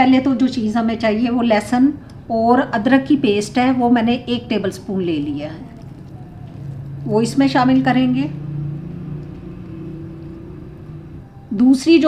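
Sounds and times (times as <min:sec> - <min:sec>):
low hum and rumble: 0:05.4 - 0:11.4.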